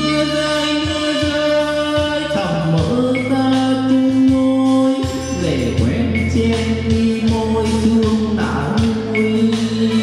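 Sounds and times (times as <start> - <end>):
karaoke ballad backing music: 0.0 - 10.0.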